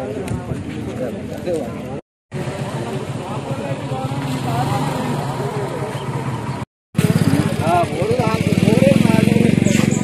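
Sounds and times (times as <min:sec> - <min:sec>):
people talking: 0:00.0 - 0:10.0
motorcycle engine running: 0:02.3 - 0:10.0.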